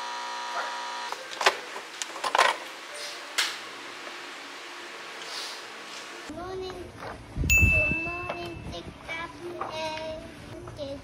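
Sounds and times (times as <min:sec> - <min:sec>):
bright ringing ding: 0:07.5 - 0:08.8.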